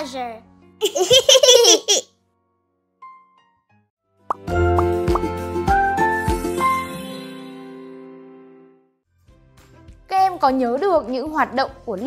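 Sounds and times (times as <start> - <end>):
cartoon voices laughing: 0.8 - 2.1
bright children's music: 4.3 - 8.6.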